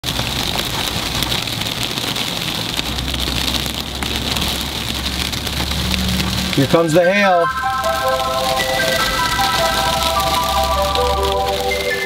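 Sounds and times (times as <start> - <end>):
hail and rain on car: 0.0 - 12.0.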